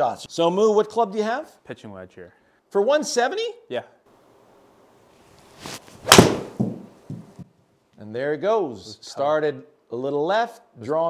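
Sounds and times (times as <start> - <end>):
golf club striking ball: 6.0 - 6.9
soft thumps: 6.1 - 7.5.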